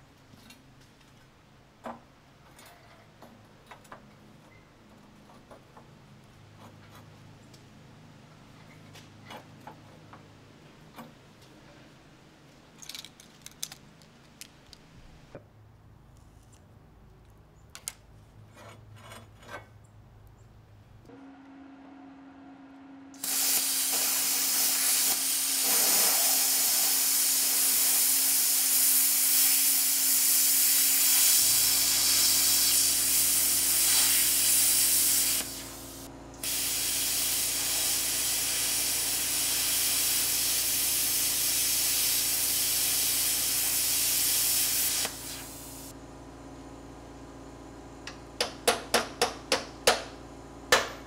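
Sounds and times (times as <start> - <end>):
machine hum: 21.1 - 25.6
plasma cutter hissing: 23.2 - 45.9.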